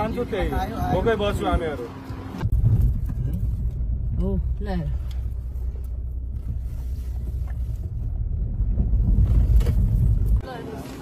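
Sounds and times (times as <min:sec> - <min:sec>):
car cabin engine and road rumble: 0:00.0 - 0:11.0.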